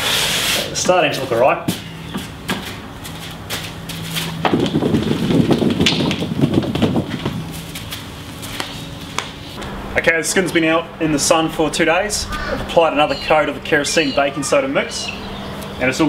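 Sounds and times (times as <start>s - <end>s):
faint low hum: 8.5s - 16.0s.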